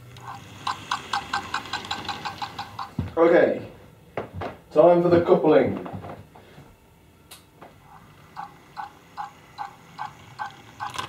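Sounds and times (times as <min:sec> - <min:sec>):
even mechanical ticking: 0:00.0 - 0:03.0, 0:08.1 - 0:11.0.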